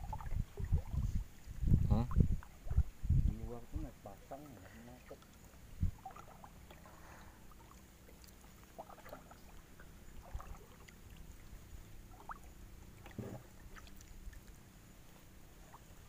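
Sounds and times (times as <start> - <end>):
light water sounds: 0.0 - 16.0
low steady hum: 0.0 - 16.0.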